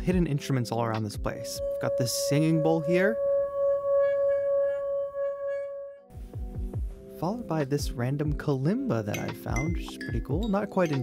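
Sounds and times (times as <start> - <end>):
singing bowl ringing: 1.6 - 6.1.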